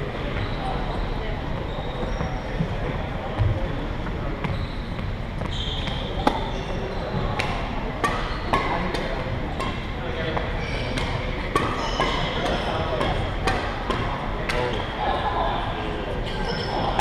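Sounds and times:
background chatter: 0.0 - 17.0
racket hitting shuttlecock: 7.4 - 9.8, 10.9 - 14.7.

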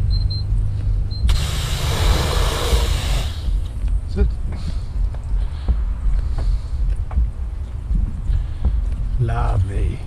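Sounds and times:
wind buffeting microphone: 1.4 - 10.0.

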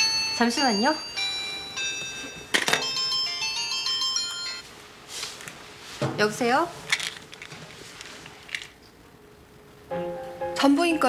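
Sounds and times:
phone ringtone melody: 0.0 - 4.6.

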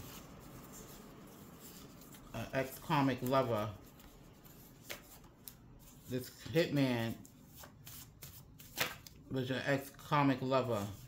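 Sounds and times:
paper cards rustling: 0.0 - 9.2.

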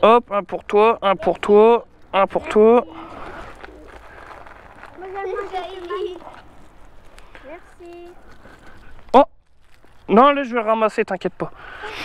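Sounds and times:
quiet group talk: 0.5 - 10.2.

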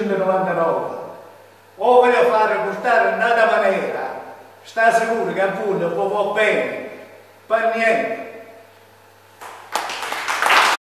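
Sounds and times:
audience applauding: 9.4 - 10.8.

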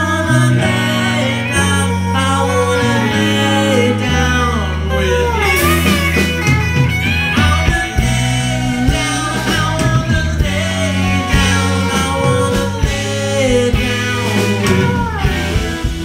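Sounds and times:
descending guitar line: 0.0 - 16.0
live rock band playing: 0.0 - 16.0.

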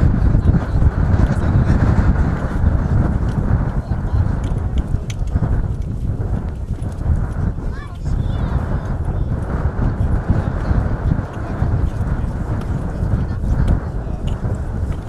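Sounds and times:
heavy low rumble: 0.0 - 15.0
people talking: 0.0 - 15.0.

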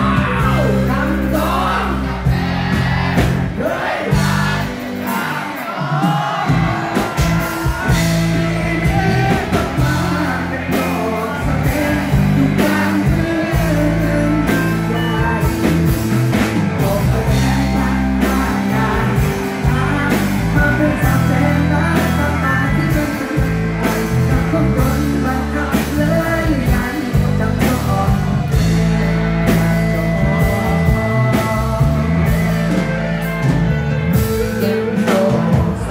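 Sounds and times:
rock band playing loudly: 0.0 - 35.9.

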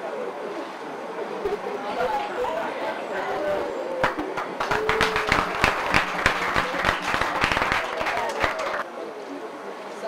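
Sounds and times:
people applauding: 4.0 - 8.8.

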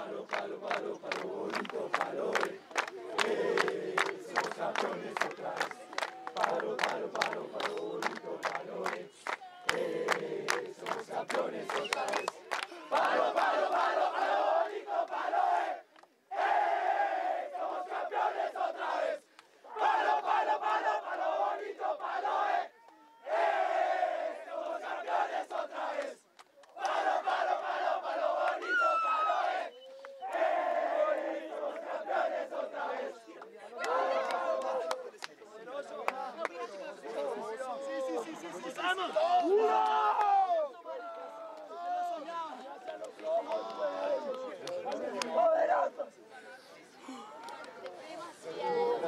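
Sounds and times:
group chanting and shouting: 0.0 - 49.0.

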